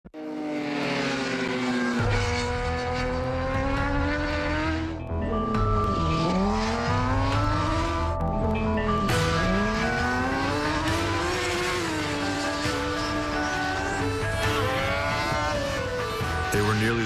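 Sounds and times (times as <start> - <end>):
sport bike engines revving: 0.2 - 17.0.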